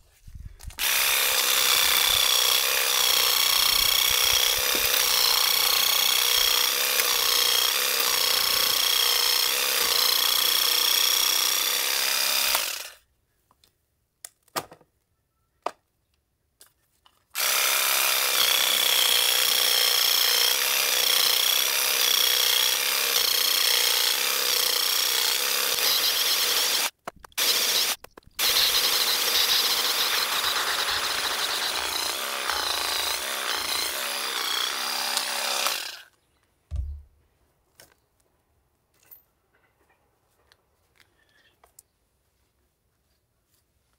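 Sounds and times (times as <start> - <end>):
electric weeder buzzing and whining: 0.8 - 13.0, 17.4 - 36.1.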